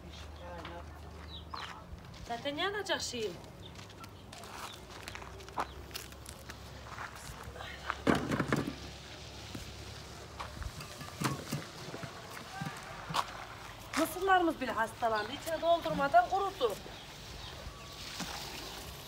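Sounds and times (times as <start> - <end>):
footsteps on dry dirt: 0.0 - 8.0, 8.7 - 18.5.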